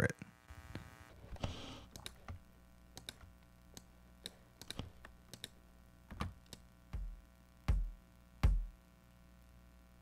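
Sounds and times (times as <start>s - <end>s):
faint computer clicks: 1.9s - 2.4s, 3.0s - 6.6s.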